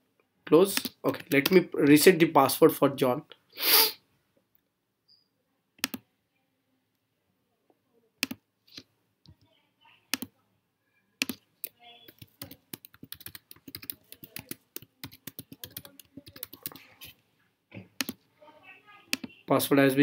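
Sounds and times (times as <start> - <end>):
rapid keyboard typing: 0.7 - 1.6, 11.2 - 17.1, 17.9 - 18.2
mouse clicks: 5.8 - 6.0, 8.2 - 9.5, 10.1 - 10.3, 11.2 - 16.8, 19.1 - 19.4.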